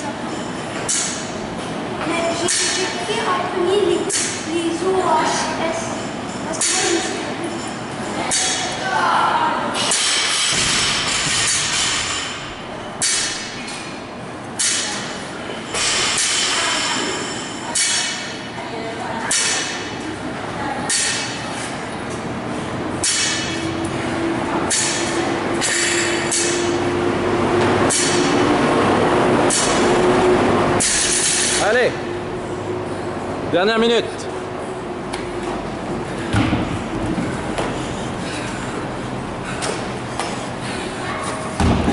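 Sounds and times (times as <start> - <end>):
steady low hum: 0.0 - 41.9.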